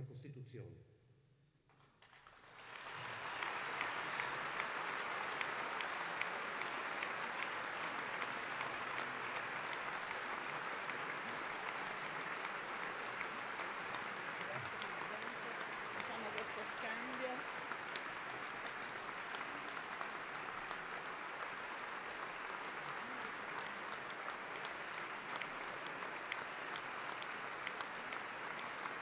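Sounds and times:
large crowd applauding: 0:02.0 - 0:29.0.

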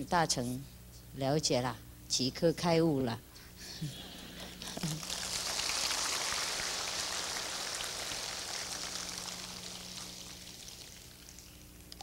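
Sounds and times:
audience applauding: 0:04.8 - 0:11.5.

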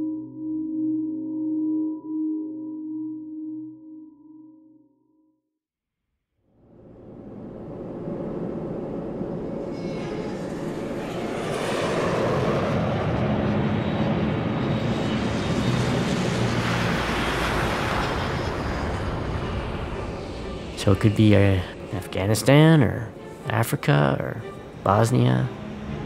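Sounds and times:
aircraft engines running: 0:06.8 - 0:26.0.

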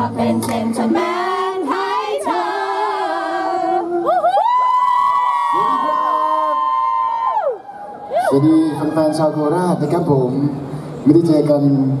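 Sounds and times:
unaccompanied singing through pa: 0:00.0 - 0:04.2.

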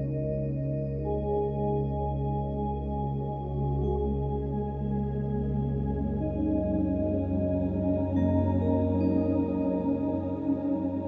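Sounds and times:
ambient music drone tones: 0:00.0 - 0:11.0.

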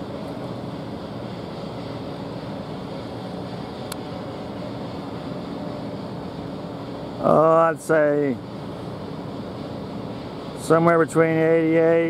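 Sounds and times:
ship machinery rumble and hum: 0:00.0 - 0:12.0.

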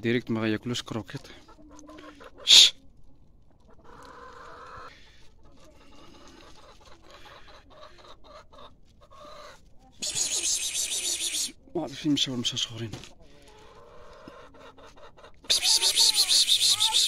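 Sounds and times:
chickens clucking: 0:00.0 - 0:17.0
harsh hissy sound: 0:10.0 - 0:11.5.

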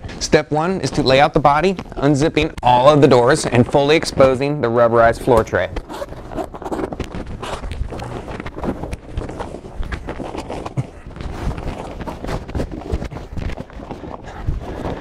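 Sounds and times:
heavy fabric rustling and flapping: 0:00.0 - 0:15.0.

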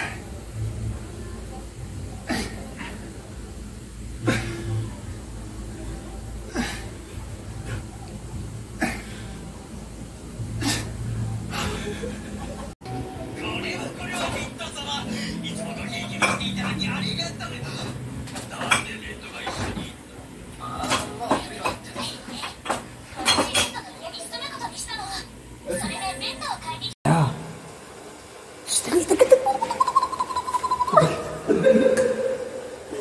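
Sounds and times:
electric fan humming: 0:23.8 - 0:33.0
puppy whining: 0:29.8 - 0:31.4.

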